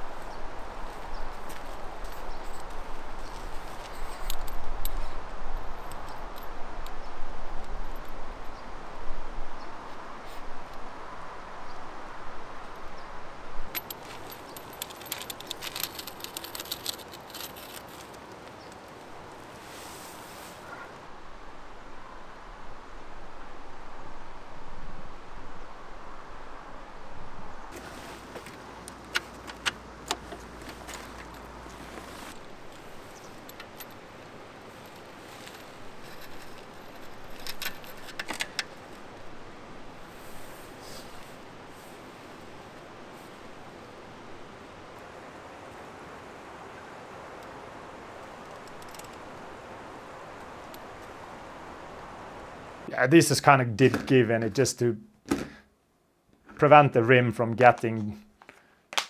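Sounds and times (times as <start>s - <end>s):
metal stand clinking and rattling: 2.0s - 5.1s, 13.7s - 18.2s, 28.9s - 38.9s.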